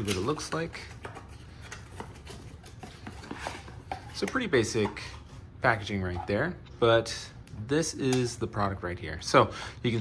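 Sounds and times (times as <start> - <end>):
light taps and scrapes: 0.0 - 5.4.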